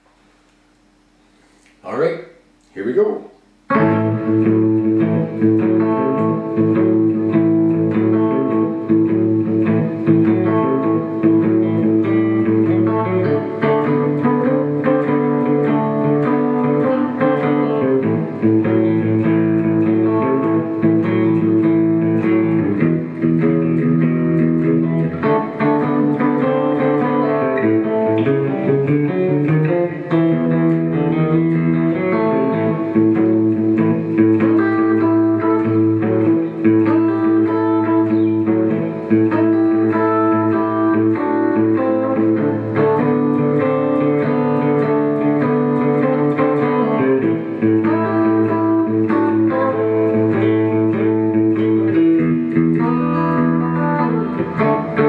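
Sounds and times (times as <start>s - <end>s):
fingerstyle blues electric guitar: 3.6s - 55.0s.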